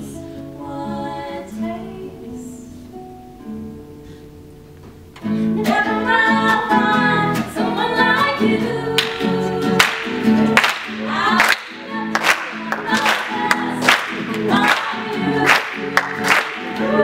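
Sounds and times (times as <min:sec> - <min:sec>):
woman singing: 0:00.0 - 0:03.0, 0:05.4 - 0:17.0
acoustic guitar: 0:00.0 - 0:17.0.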